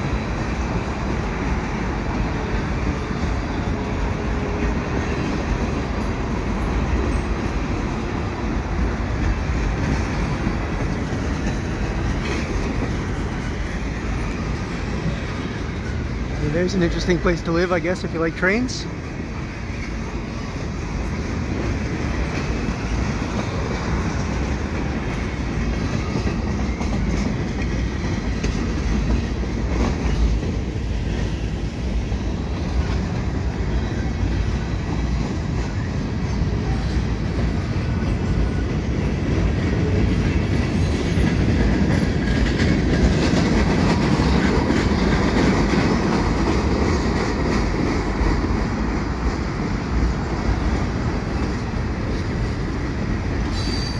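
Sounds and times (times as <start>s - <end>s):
train wheels rumbling over bridge: 0.0s - 53.9s.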